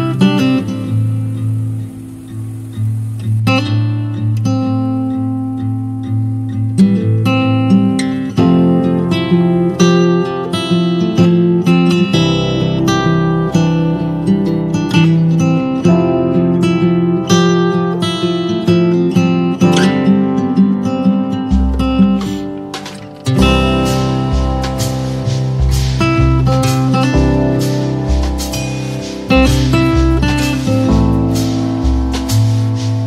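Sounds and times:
plucked notes: 0:06.8 - 0:33.0
sustained bass notes: 0:23.4 - 0:33.0.

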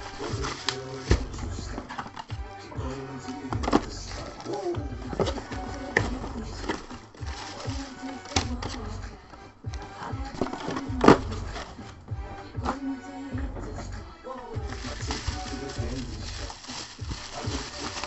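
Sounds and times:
cardboard and plastic packaging handled: 0:00.0 - 0:09.0, 0:09.7 - 0:12.0, 0:14.5 - 0:18.0
background music: 0:00.0 - 0:18.0.

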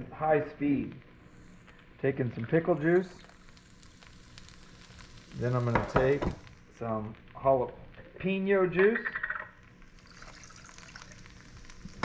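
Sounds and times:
liquid pouring and splashing: 0:10.0 - 0:12.0.

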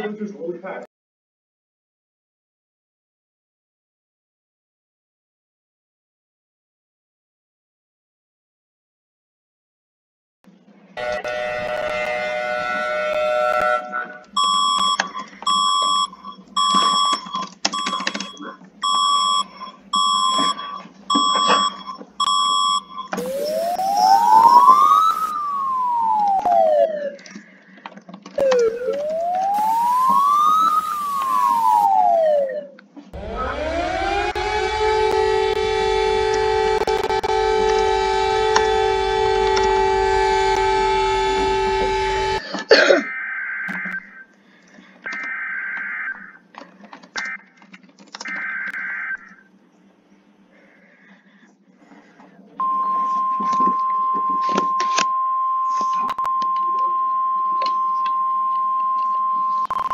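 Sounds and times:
rising and falling siren: 0:11.0 - 0:16.8, 0:20.0 - 0:27.3, 0:28.4 - 0:42.4
siren winding up: 0:11.0 - 0:27.3, 0:28.4 - 0:42.4, 0:52.6 - 0:59.9
short alert beeps: 0:14.4 - 0:26.5.

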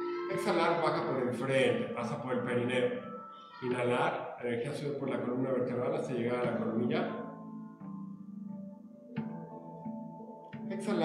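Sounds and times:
plucked string notes: 0:00.0 - 0:11.0.

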